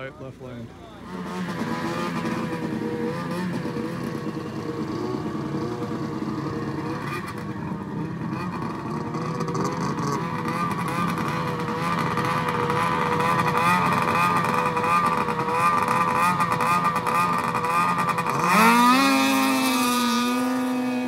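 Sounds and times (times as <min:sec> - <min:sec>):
snowmobile engine fast idle: 0:01.1 - 0:21.0.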